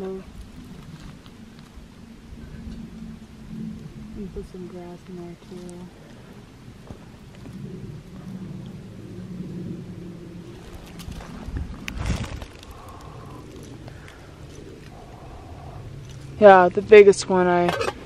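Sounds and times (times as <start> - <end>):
dry grass and sticks rustling: 0.0 - 18.0
faint low hum: 0.0 - 18.0.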